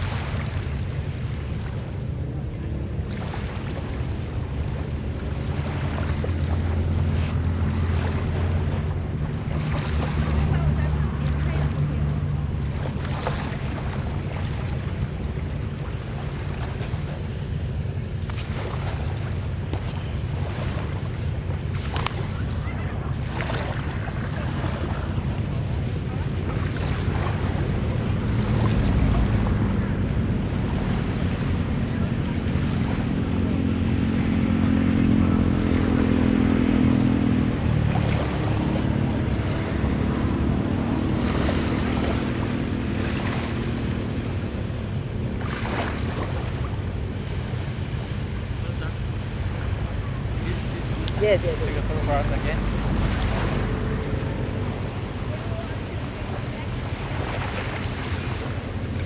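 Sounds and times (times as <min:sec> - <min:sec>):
small waves washing: 0:00.0 - 0:59.0.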